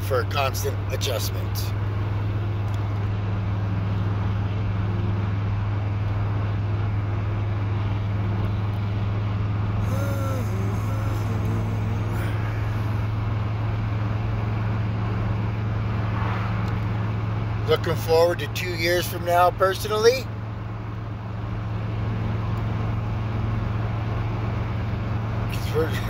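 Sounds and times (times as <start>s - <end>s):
vehicle cabin drone: 0.0s - 26.0s
man yawning: 9.8s - 13.2s.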